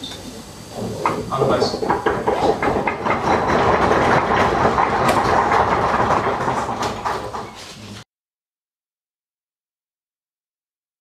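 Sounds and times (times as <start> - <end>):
audience applauding: 2.0 - 7.7.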